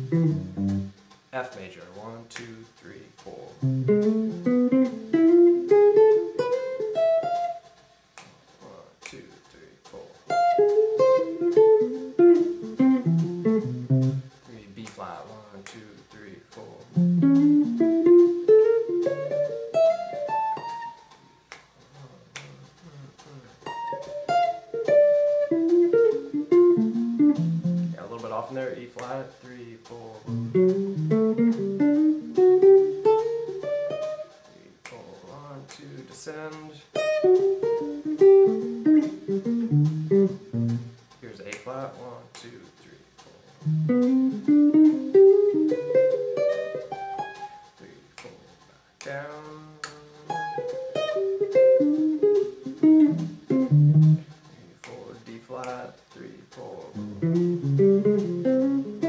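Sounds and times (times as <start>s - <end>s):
electric guitar arpeggios: 0.0s - 1.0s, 3.6s - 7.6s, 10.3s - 14.3s, 17.0s - 21.1s, 23.6s - 28.0s, 30.3s - 34.2s, 37.0s - 41.0s, 43.6s - 47.6s, 50.3s - 54.2s, 57.0s - 59.0s.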